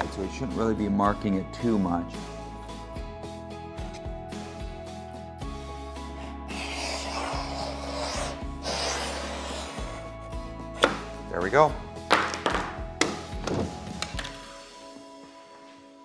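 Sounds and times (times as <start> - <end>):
scoring tool scraping laminate: 6.2 - 10.1.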